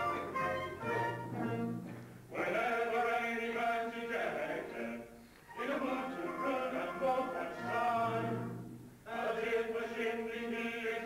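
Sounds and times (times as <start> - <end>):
small orchestra playing: 0.0 - 2.2, 5.5 - 9.0.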